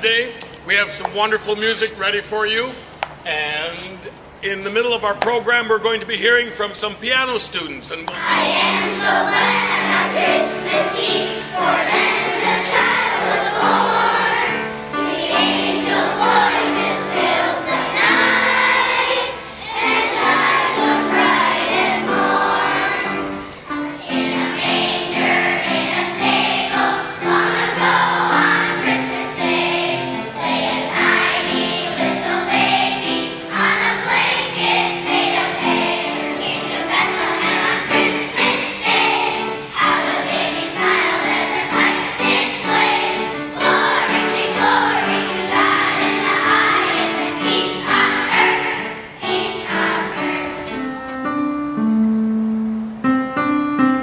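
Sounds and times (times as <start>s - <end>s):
children's choir singing: 8.1s - 51.4s.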